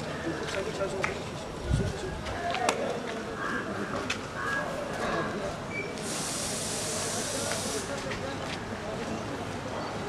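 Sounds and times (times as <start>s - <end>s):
outdoor background noise: 0.0s - 10.0s
steady high hiss: 5.7s - 8.2s.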